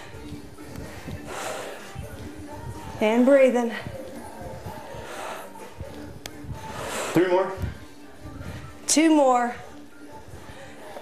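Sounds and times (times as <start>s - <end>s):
forceful exhaled breaths: 0.0s - 3.0s, 3.7s - 8.9s
faint background music: 0.0s - 11.0s.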